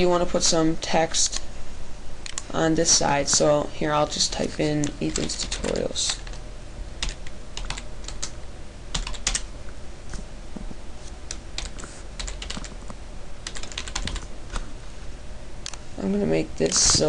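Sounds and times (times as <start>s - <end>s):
keyboard typing: 4.4s - 6.4s, 7.0s - 9.5s, 11.6s - 12.8s, 13.4s - 14.3s.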